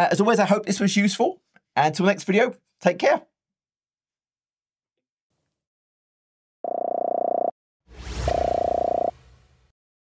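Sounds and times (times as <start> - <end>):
whoosh: 7.9 - 9.7.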